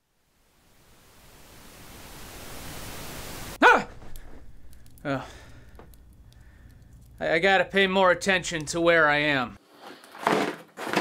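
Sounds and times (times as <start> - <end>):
steady hiss: 0.0 - 8.6
short loud cry: 3.6 - 4.1.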